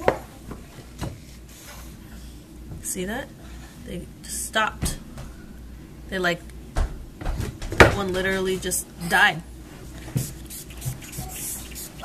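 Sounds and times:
spray bottle squirting: 0:10.2 - 0:12.0.

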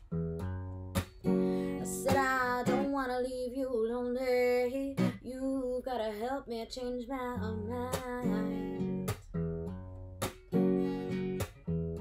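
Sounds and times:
acoustic guitar strumming blues chords: 0:00.0 - 0:12.0.

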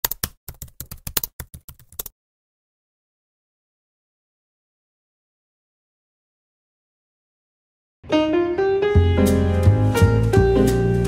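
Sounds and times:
computer keyboard typing: 0:00.0 - 0:02.1.

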